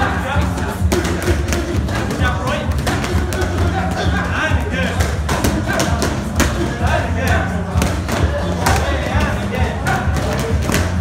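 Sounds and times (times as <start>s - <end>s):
background music with steady bass: 0.0s - 11.0s
boxing gloves striking pads: 0.6s - 11.0s.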